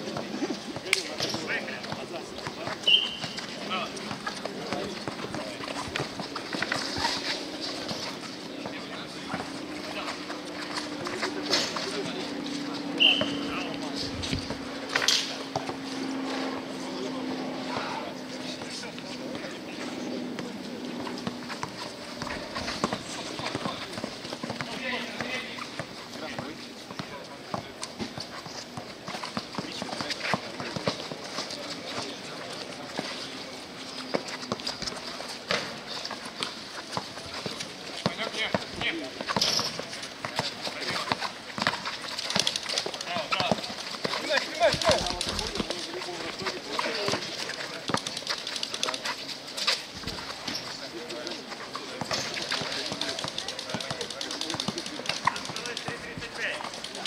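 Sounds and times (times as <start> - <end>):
players calling out: 0.0 - 57.0
sneakers squeaking and slapping: 0.1 - 12.1, 12.9 - 13.6, 21.1 - 50.8, 51.5 - 56.8
basketball bouncing: 52.0 - 57.0.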